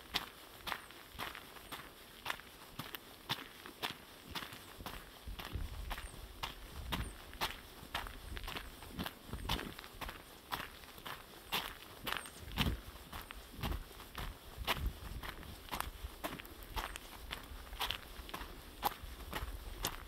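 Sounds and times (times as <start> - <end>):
footsteps crunching on trail: 0.0 - 20.0.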